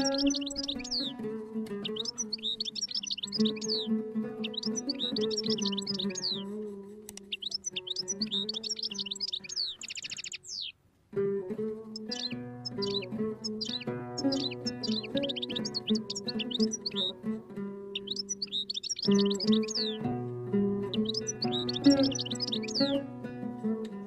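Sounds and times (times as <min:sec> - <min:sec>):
goldfinch chirping: 0:00.0 - 0:01.2, 0:01.8 - 0:06.4, 0:07.2 - 0:10.8, 0:11.9 - 0:17.2, 0:17.9 - 0:20.0, 0:20.8 - 0:23.0
oud solo improvisation: 0:11.1 - 0:18.0.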